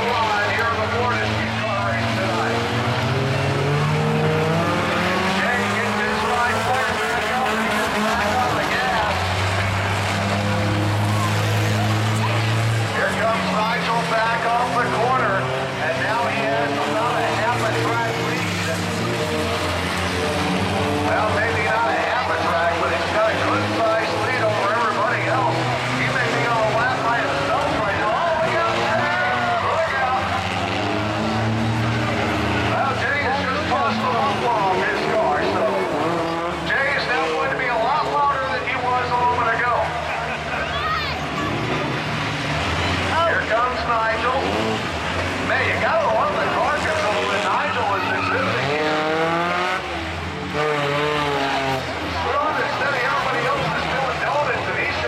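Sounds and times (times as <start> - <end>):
car engines revving: 0.0 - 55.0
crowd voices: 0.0 - 55.0.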